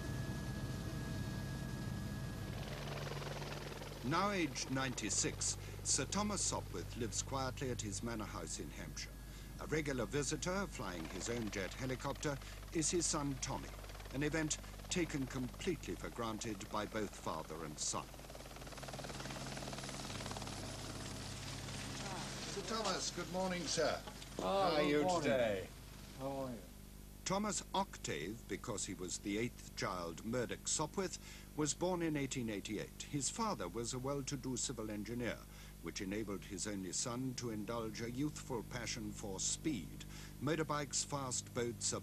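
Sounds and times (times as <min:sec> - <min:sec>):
helicopter rotor and engine: 0:00.0 - 0:26.1.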